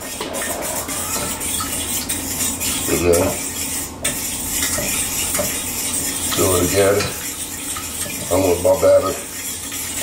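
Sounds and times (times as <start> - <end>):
batter stirred in metal saucepan: 0.0 - 10.0.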